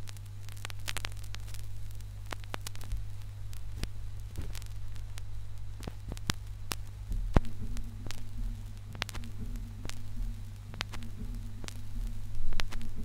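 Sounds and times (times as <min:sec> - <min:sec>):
turntable hum: 0:00.0 - 0:13.0
vinyl surface clicks and pops: 0:00.0 - 0:13.0
low rumble: 0:04.0 - 0:13.0.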